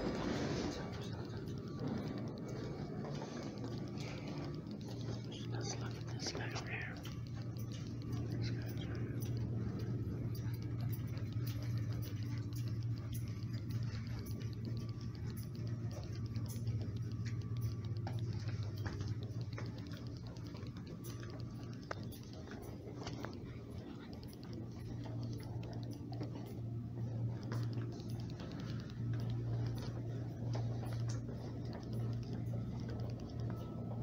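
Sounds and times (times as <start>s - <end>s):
steady low hum: 0.0s - 34.0s
person whispering: 4.0s - 9.9s
footsteps on tiled floor: 7.1s - 34.0s.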